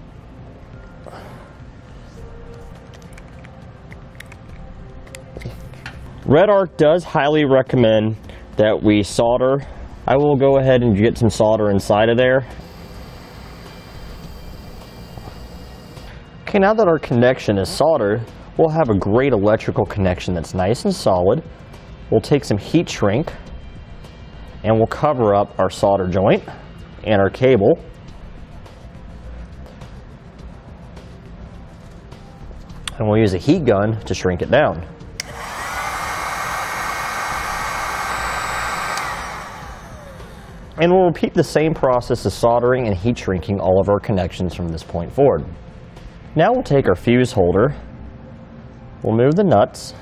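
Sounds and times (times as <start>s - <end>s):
fan winding down whine: 11.0s - 16.5s, 35.2s - 42.4s
gas torch hissing: 12.5s - 16.2s, 35.2s - 40.8s
heat gun blowing: 12.5s - 16.2s, 35.2s - 40.8s.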